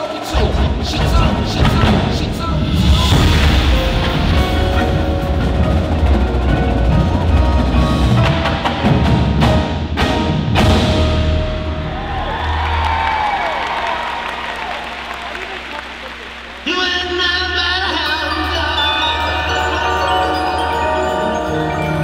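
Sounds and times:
drums: 0.0s - 16.6s
marimbas: 1.1s - 9.5s, 15.9s - 22.0s
ringing tones with sliding pitch: 18.0s - 22.0s.

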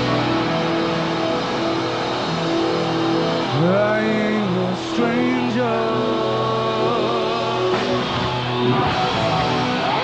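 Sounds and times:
distorted electric guitar chords: 0.0s - 10.0s
drums: 0.0s - 10.0s.

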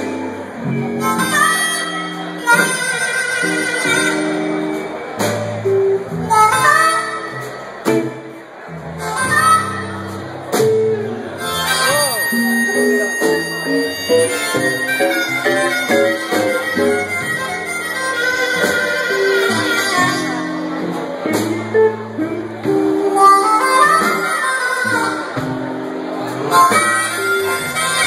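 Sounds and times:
amplified harmonica solo: 0.0s - 5.2s, 6.3s - 7.7s, 8.9s - 28.0s
backing band: 0.0s - 28.0s.

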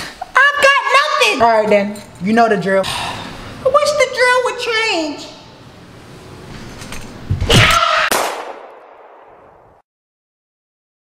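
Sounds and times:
loud slam: 7.3s - 9.8s.

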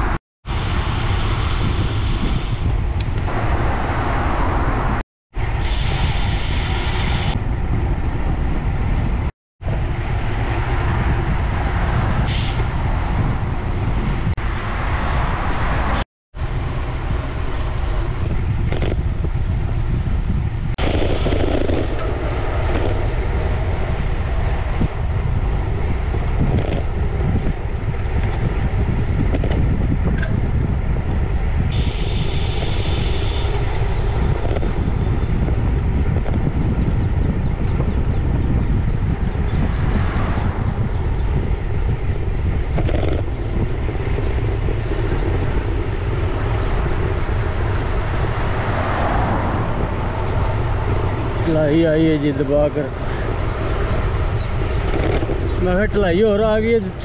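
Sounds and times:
bike tyres on tarmac: 0.0s - 57.0s
wind buffeting microphone: 0.0s - 57.0s.

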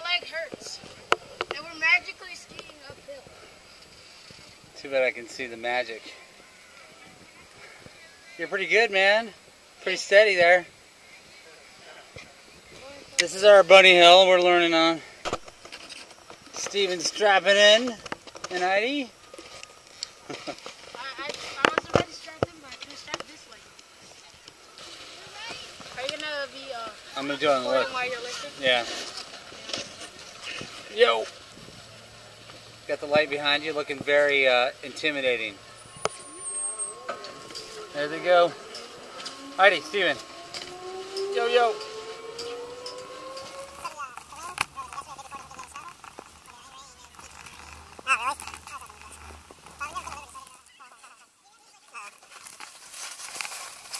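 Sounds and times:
voices: 0.0s - 15.2s, 16.3s - 52.7s
faint steady tone: 0.0s - 51.4s.

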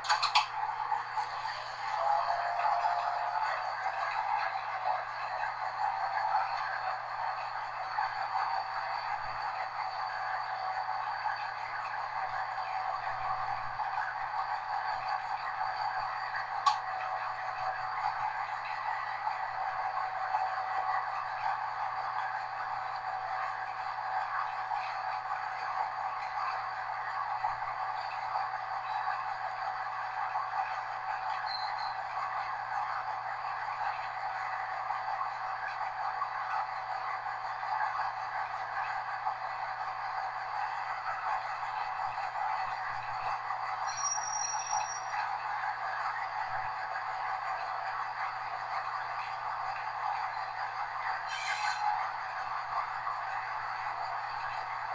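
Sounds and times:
train cab running hiss: 0.0s - 6.6s, 43.8s - 45.1s, 51.2s - 52.2s
faint steady whine: 0.0s - 54.9s
train running noise: 0.0s - 54.9s.

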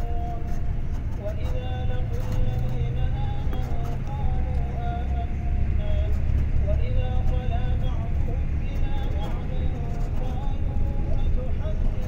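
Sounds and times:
vehicle interior rumble: 0.0s - 12.0s.

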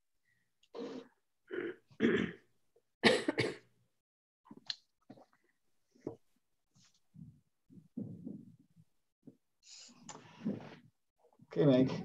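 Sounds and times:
person clearing throat: 1.5s - 3.7s.

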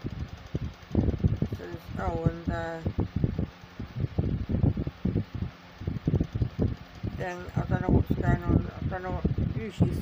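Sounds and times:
ceiling fan hum: 0.0s - 10.0s
wind buffeting microphone: 0.0s - 10.0s.

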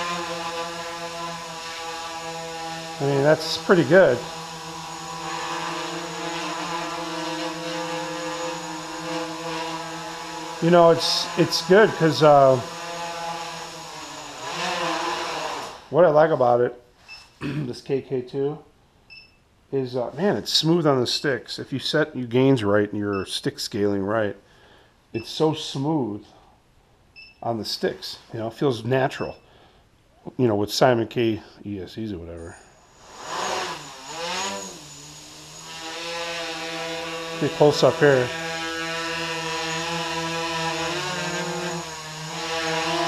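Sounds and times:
quadcopter motors buzzing whine: 0.0s - 15.9s, 32.8s - 43.0s.

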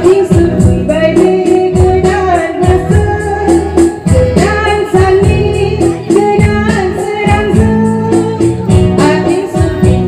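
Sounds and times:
instrumental accompaniment with beat: 0.0s - 10.0s
woman singing into a microphone: 0.0s - 10.0s.

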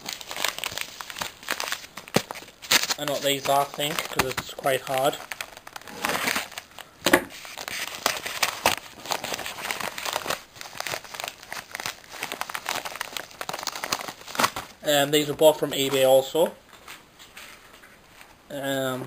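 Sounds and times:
paper packaging crinkling: 0.0s - 18.3s.

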